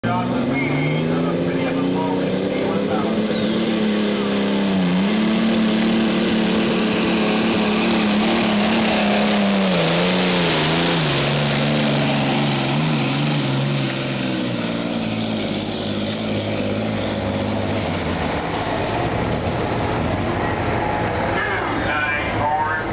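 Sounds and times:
tractor engine at high revs: 0.0s - 22.9s.

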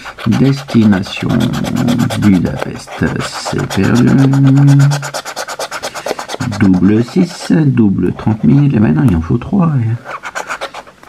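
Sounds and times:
scratching a scratch card: 0.0s - 9.2s, 10.0s - 11.0s.

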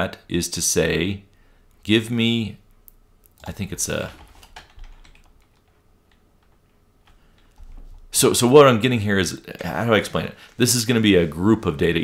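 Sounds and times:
computer keyboard clicks: 3.3s - 7.8s.

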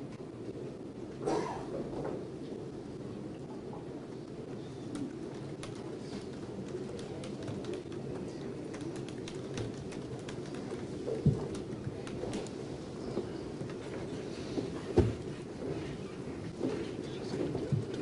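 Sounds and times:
low murmur of voices: 0.0s - 18.0s
people shuffling: 9.6s - 18.0s.

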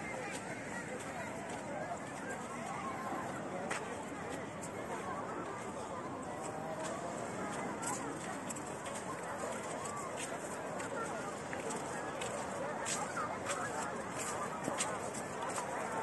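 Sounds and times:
crowd voices babbling: 0.0s - 16.0s.

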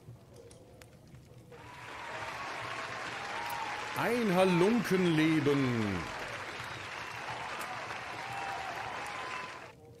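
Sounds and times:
applause: 1.6s - 9.8s.

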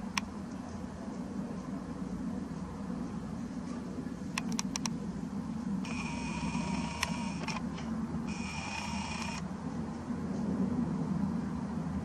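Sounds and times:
sharp clicks: 0.0s - 0.3s, 4.3s - 5.0s, 5.9s - 9.5s
steady low hum: 0.0s - 12.0s
lens zoom motor whirring: 5.8s - 9.5s.

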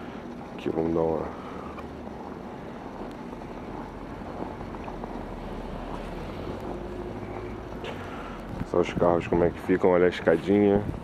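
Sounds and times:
outdoor hiss: 0.0s - 11.0s.

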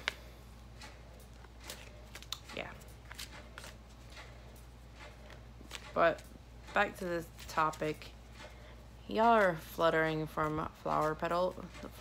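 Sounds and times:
cards clicking: 0.8s - 4.3s.

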